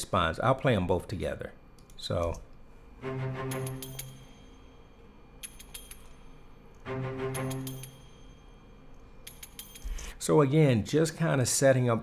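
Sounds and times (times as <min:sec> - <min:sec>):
low string chord: 0:03.0 - 0:04.4, 0:06.9 - 0:08.2
finger cymbals clinking: 0:03.4 - 0:10.1.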